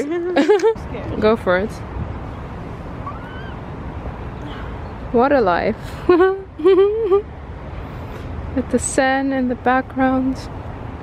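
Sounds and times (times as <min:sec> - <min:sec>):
faint rising squeak: 0:03.0 - 0:03.7.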